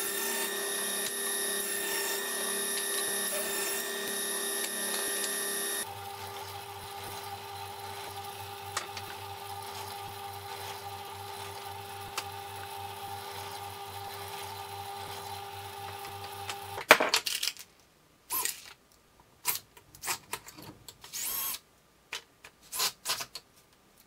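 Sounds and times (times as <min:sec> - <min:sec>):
drill press motor boring wood: 0:00.0 - 0:16.8
table saw running: 0:00.0 - 0:16.8.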